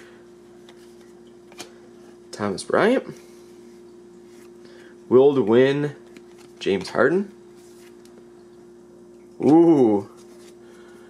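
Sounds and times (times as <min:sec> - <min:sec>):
steady faint hum: 0:00.0 - 0:11.0.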